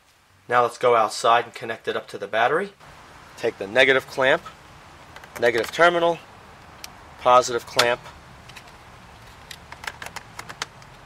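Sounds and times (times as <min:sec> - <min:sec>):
battery clamp clicks and rattles: 0:07.8 - 0:11.0.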